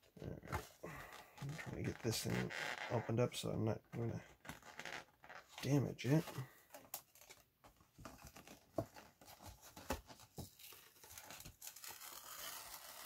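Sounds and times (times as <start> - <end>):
cardboard and paper tearing: 8.3 - 13.0.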